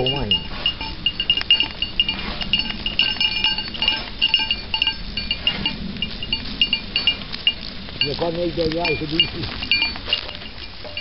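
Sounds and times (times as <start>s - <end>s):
small metal bells tinkling: 0.0s - 11.0s.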